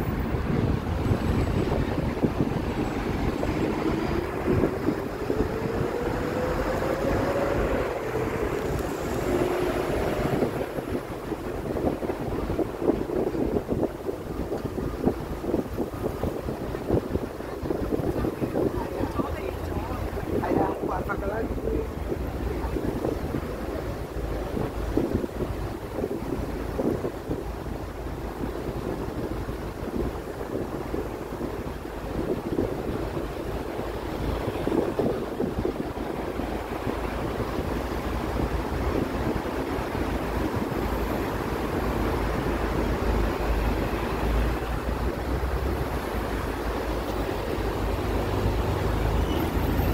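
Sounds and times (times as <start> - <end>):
road traffic passing: 0.0 - 49.9
street noise: 0.0 - 49.9
wind buffeting microphone: 0.0 - 49.9
people's voices: 18.1 - 23.4.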